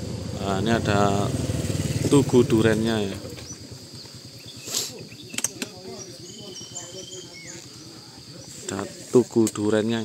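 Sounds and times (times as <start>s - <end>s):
insects chirping and trilling: 0.0s - 10.0s
faint distant voices: 2.0s - 10.0s
brief hiss: 4.6s - 5.0s.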